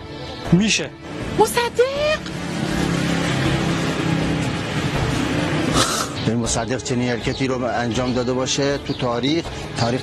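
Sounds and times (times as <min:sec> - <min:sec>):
car passing by: 0:01.1 - 0:06.1.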